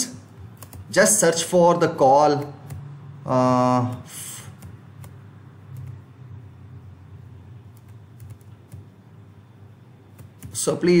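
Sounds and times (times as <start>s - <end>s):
low steady hum: 0.0s - 11.0s
keyboard keys clicking: 0.6s - 0.9s, 7.7s - 8.9s, 10.1s - 10.6s.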